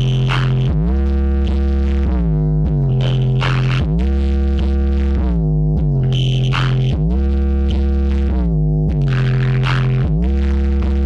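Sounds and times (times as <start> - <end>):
heavy sub-bass: 0.0 - 11.0
loud electronic dance music: 0.0 - 11.0.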